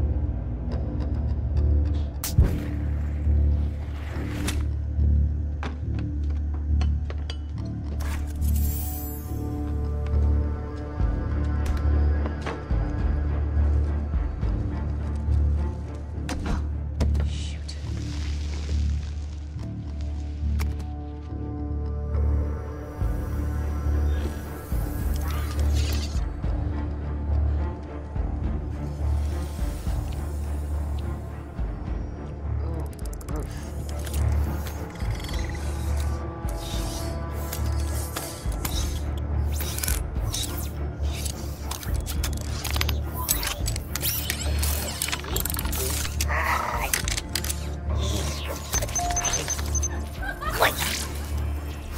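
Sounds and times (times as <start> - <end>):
film music score: 0.0 - 51.9
robot clicking and whirring: 24.2 - 26.3, 32.7 - 51.9.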